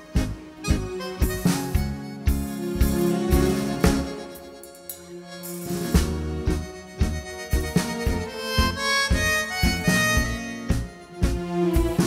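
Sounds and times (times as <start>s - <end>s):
accordion melody: 0.0s - 12.0s
live tango band: 0.0s - 12.0s.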